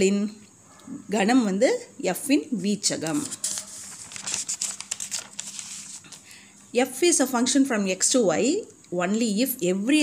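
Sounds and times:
paper pages rustling: 3.0 - 6.3.

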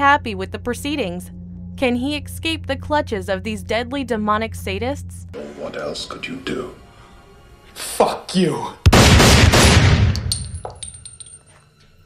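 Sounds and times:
pistol fire: 8.9 - 10.5
shell casings clinking: 10.1 - 11.5.

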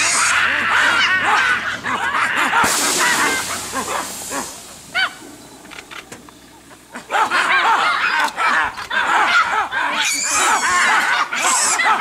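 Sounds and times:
monkeys screaming alarm calls: 0.0 - 6.0, 6.9 - 12.0.

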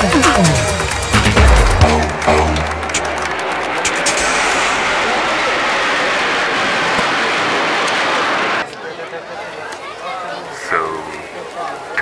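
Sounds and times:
music: 0.0 - 4.8
jets flying over: 0.1 - 8.7.

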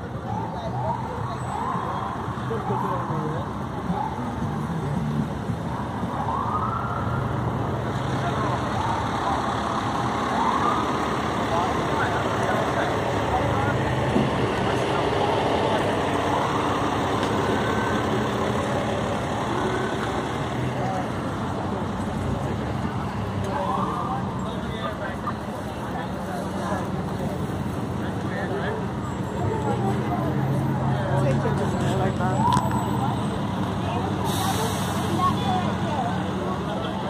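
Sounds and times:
people talking: 0.0 - 5.0, 7.9 - 37.0
idling vehicle engines: 0.0 - 37.0.

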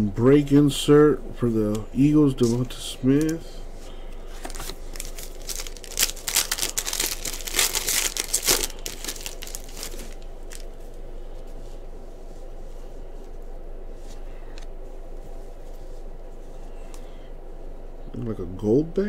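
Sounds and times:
cards being handled: 4.3 - 10.9
foil wrapper crinkling and tearing: 4.4 - 10.8.

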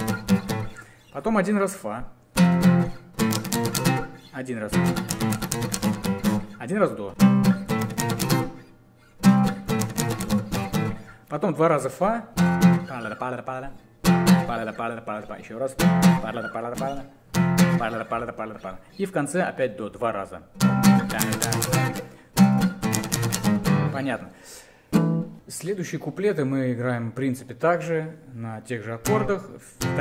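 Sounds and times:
acoustic guitar strumming: 0.0 - 1.2, 2.3 - 11.2, 12.3 - 19.0, 20.6 - 24.2, 24.9 - 25.4, 29.0 - 30.0.

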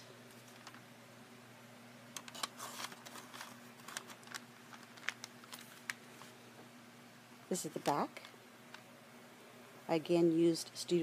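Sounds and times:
low steady hum: 0.0 - 11.0
paper card clicks and rustles: 0.3 - 0.8, 2.2 - 6.3.

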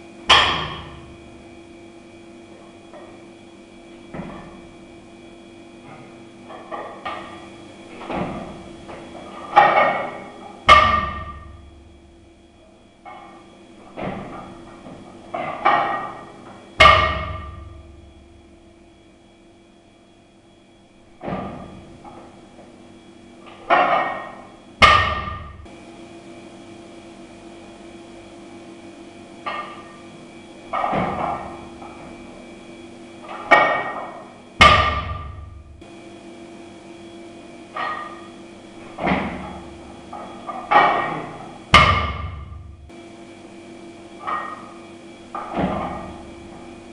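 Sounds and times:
low hum: 0.0 - 46.9
barbell dropped with clanging plates: 0.3 - 1.2, 6.5 - 11.7, 13.1 - 18.0, 21.2 - 22.3, 23.5 - 25.6, 30.7 - 32.2, 33.2 - 35.6, 37.7 - 42.7, 44.2 - 46.4.

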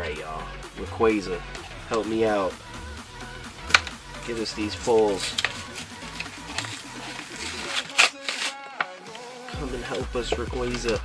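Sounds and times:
packaging being torn open: 5.0 - 9.5.

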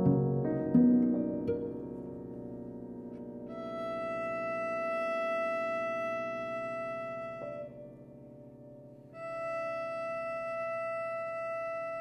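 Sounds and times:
cello bowed note: 3.4 - 12.0.

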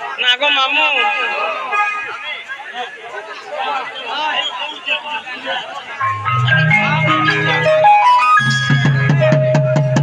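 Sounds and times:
folk melody over low drone: 6.1 - 9.6.

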